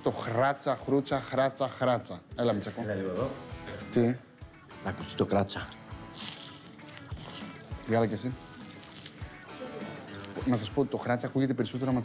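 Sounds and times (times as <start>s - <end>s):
faint background music: 0.0s - 12.0s
crisp crunch of pastry bite: 6.1s - 7.8s.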